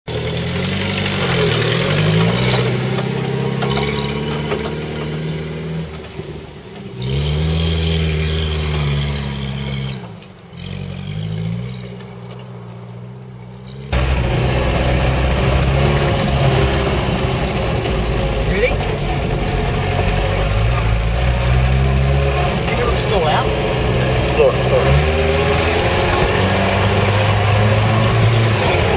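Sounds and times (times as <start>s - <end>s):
engine revving under load: 0.1s - 28.9s
engine drone inside cab: 11.8s - 28.9s.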